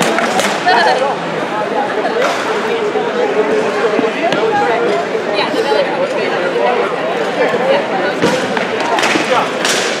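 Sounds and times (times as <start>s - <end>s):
voices talking: 0.0s - 9.9s.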